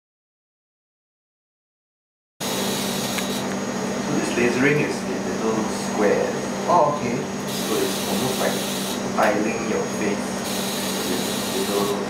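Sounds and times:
smoke evacuator suction drone: 2.4s - 12.0s.

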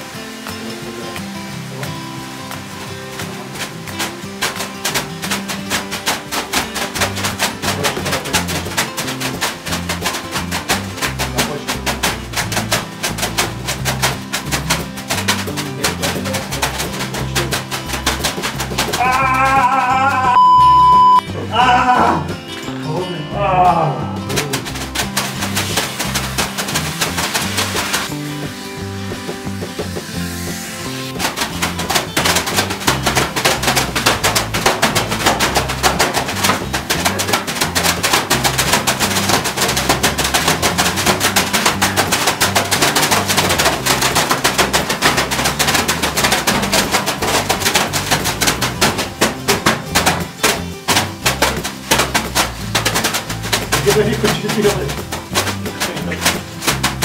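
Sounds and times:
leafy brooms slapping and rustling: 0.0s - 20.3s, 21.6s - 57.0s
music: 0.0s - 57.0s.

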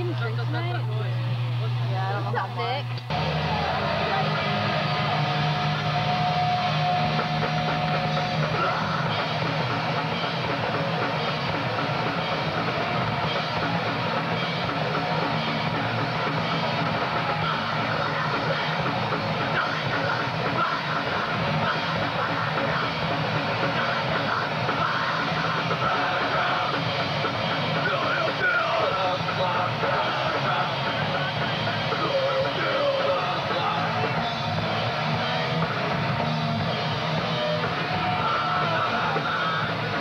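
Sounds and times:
punk band playing live: 3.1s - 40.0s.

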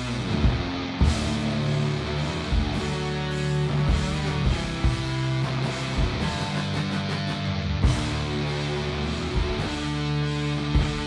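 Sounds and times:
electric guitar chords: 0.0s - 11.0s
rock band playing: 0.0s - 11.0s.

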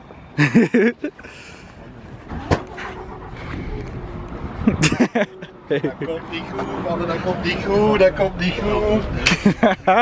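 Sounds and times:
bus engine idling: 0.4s - 5.5s.

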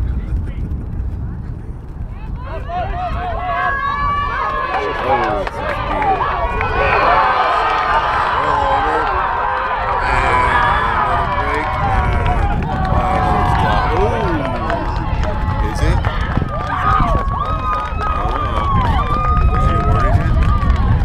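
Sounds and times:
steady low rumble: 0.0s - 21.0s
people shouting and calling out: 2.2s - 20.4s.

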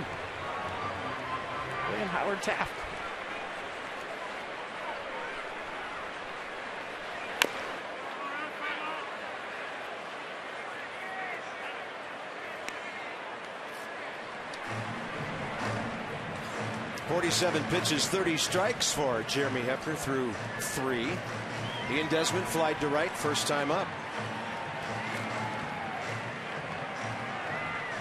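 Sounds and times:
murmur of crowd voices: 0.0s - 28.0s
sharp crack: 7.3s - 7.8s.

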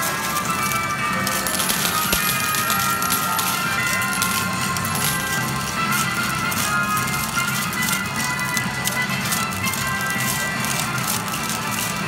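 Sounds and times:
scattered clicks: 0.0s - 12.0s.

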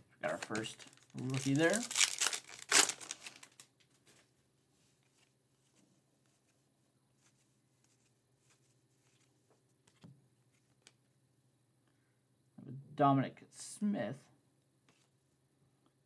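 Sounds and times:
foil wrapper rustling: 0.3s - 3.7s.

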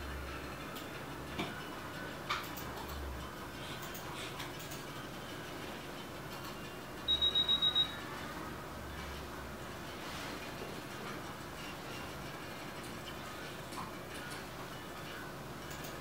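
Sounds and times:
short high-pitched electronic beeps: 7.1s - 8.0s.

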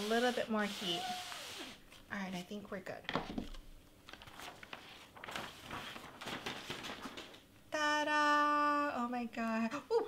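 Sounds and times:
plastic sheets rustling and crinkling: 4.0s - 7.5s.

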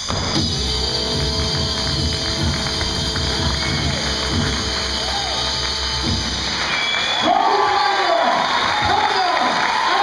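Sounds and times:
swing dance music: 0.3s - 7.9s
audience cheering and applauding: 0.5s - 10.0s.

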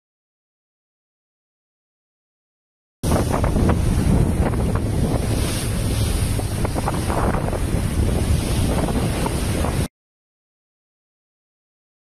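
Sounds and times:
strong wind buffeting microphone: 3.0s - 9.9s
waves and rushing water: 3.0s - 9.9s.

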